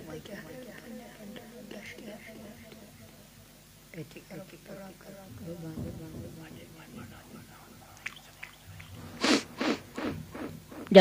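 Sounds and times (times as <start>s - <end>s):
short hissing noises: 8.0s - 11.0s.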